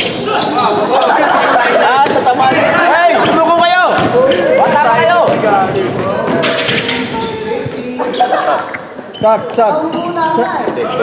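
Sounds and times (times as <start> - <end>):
players calling out: 0.0 - 11.0
basketball bouncing on court: 2.0 - 7.9.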